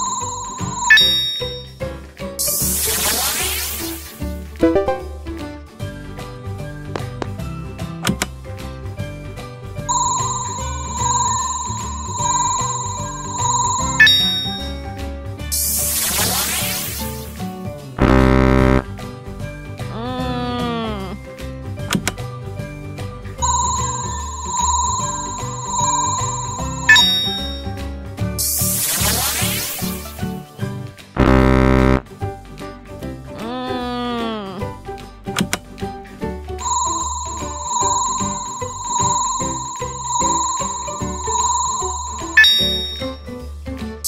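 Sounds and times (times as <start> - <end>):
warbling electronic ringing tone: 0.0 - 1.7, 9.9 - 14.8, 23.4 - 27.7, 36.6 - 43.2
bright ding: 0.0 - 1.8, 9.9 - 14.8, 23.4 - 27.7, 36.6 - 43.2
background music: 0.0 - 44.0.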